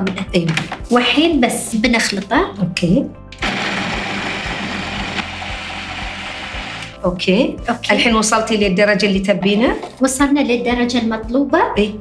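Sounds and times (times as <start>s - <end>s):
food processor grinding almonds: 3.4s - 7.0s.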